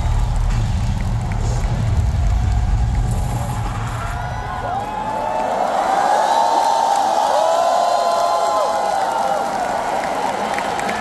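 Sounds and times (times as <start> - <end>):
crowd cheering and screaming: 0.0 - 11.0.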